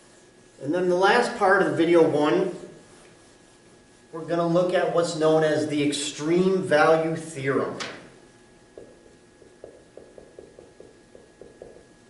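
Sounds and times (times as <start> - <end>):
marker writing on whiteboard: 8.8 - 12.0.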